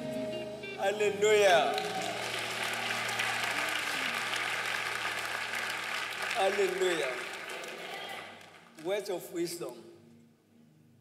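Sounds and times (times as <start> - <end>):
congregation applauding: 1.2 - 9.2.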